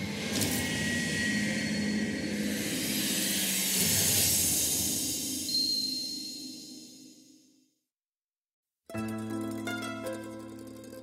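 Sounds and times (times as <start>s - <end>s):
rumbling whoosh with hissing shimmer: 0.0s - 5.6s.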